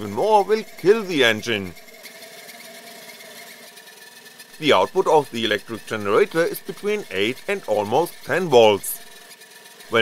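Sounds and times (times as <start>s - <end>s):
model engine running: 0.0s - 10.0s.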